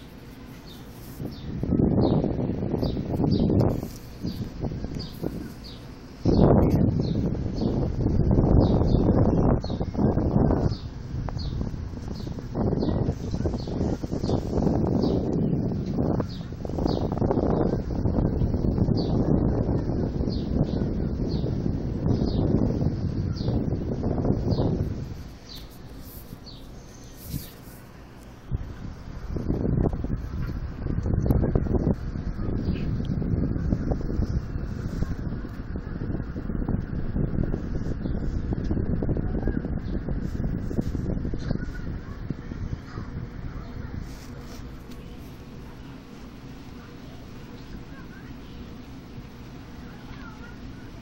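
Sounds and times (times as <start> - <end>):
microphone handling noise: 0.0 - 45.8
small bird chirping: 0.5 - 17.9, 24.4 - 27.8.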